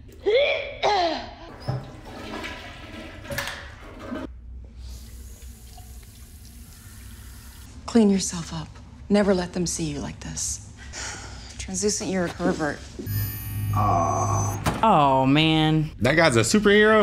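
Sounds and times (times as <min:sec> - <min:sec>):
toilet flushing: 0:01.5 - 0:07.7
voice sounds: 0:13.6 - 0:15.2.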